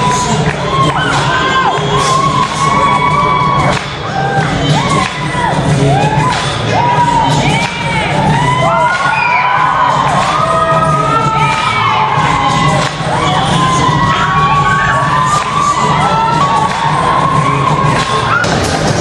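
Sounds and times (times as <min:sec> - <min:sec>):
crowd cheering and screaming: 0:00.0 - 0:19.0
music playing: 0:00.0 - 0:19.0.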